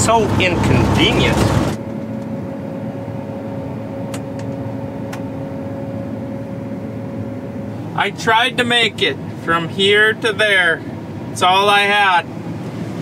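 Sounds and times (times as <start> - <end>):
combine harvester drone: 0.0 - 13.0.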